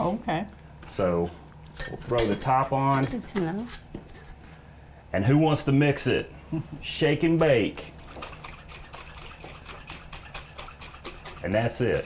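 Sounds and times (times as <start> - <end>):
dressing sloshing in shaken jar: 8.0 - 11.5.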